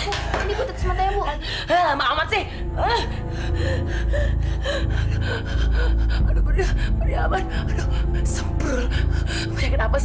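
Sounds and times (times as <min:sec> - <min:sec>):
low music bed: 0:00.0 - 0:10.0.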